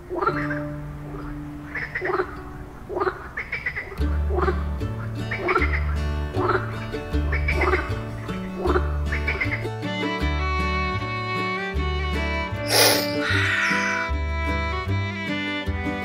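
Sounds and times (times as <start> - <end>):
background music with bass line: 4.0 - 16.0
short rising animal-like calls: 12.7 - 14.1.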